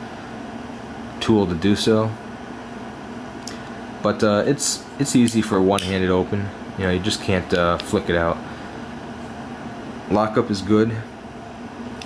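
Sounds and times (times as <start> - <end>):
fan or air conditioner hum: 0.0 - 12.0.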